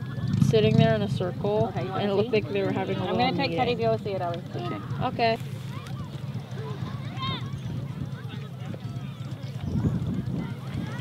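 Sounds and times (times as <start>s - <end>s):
faint distant voices: 0.0s - 11.0s
wind rumbling on microphone: 3.6s - 11.0s.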